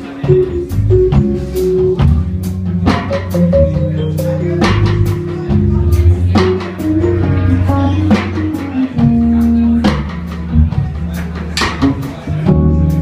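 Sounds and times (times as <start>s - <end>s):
drum kit cymbal and drum strokes: 0.0s - 13.0s
jazz fusion band playing live: 0.0s - 13.0s
electric bass line: 0.3s - 13.0s.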